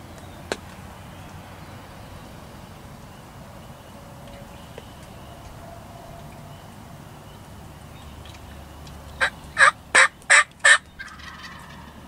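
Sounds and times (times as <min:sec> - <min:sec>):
turkey yelps: 0:09.2 - 0:11.9.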